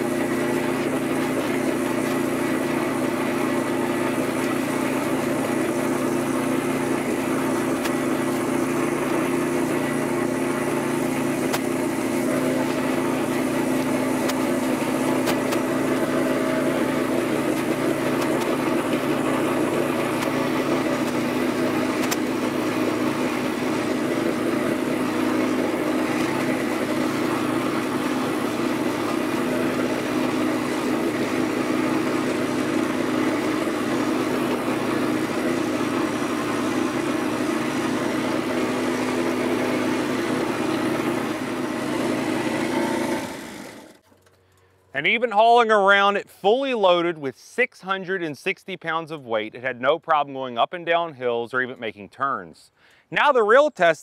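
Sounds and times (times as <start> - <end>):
gas engine running: 0.0 - 48.0.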